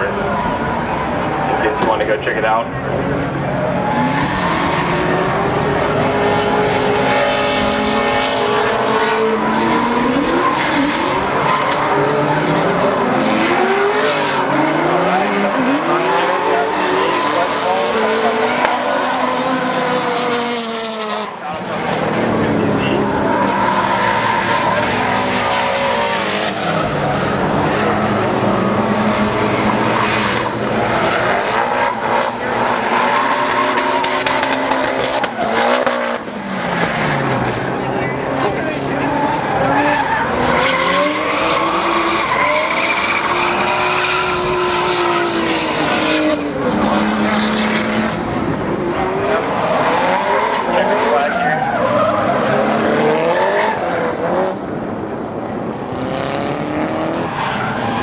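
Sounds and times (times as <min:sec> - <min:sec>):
race car engines revving: 0:00.0 - 0:58.0
tires skidding and squealing: 0:00.0 - 0:58.0.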